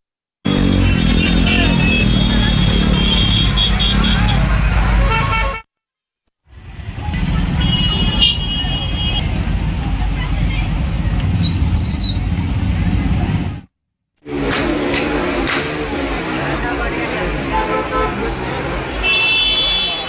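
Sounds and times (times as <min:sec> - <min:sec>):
traffic: 0:00.5 - 0:05.6, 0:06.5 - 0:20.0
vehicle horns honking: 0:00.5 - 0:05.6, 0:07.2 - 0:09.3, 0:17.4 - 0:20.0
people in the street: 0:00.5 - 0:05.7, 0:06.5 - 0:20.0.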